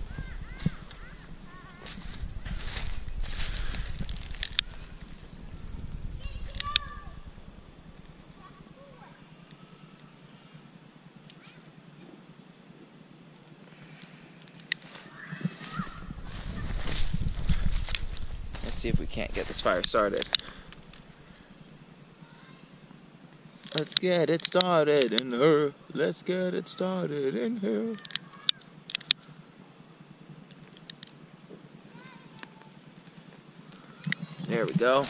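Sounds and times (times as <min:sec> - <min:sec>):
wind gusting on microphone: 0:00.0 - 0:08.8, 0:15.3 - 0:21.9.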